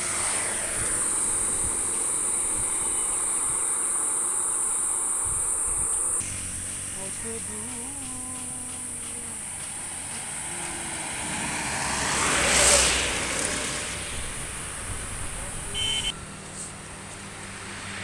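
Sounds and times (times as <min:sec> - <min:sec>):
high insect drone: 0:00.0 - 0:16.2
vehicle passing on highway: 0:00.0 - 0:18.0.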